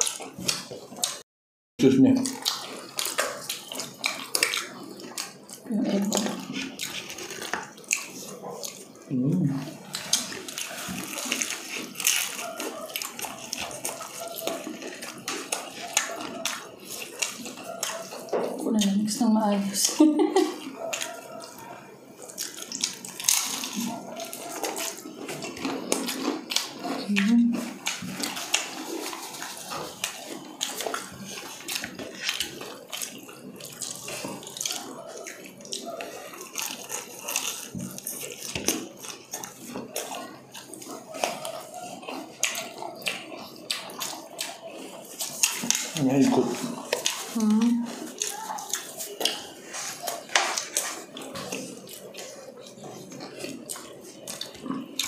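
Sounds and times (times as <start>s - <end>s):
wet chewing and mouth sounds: 0.0s - 1.2s, 2.0s - 55.0s.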